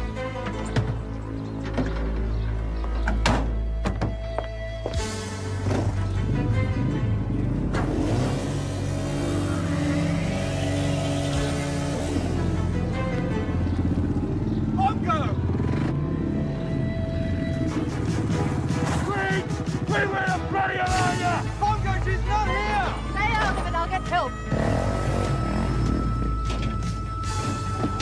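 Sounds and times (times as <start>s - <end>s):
background music: 0.0s - 28.0s
dirt bike engine revving: 6.2s - 16.4s, 24.4s - 26.5s.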